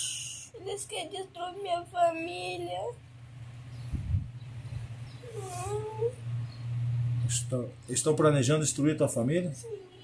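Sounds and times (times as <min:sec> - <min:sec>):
steady low hum: 0:00.0 - 0:10.0
high-pitched wavering cry: 0:05.2 - 0:06.3.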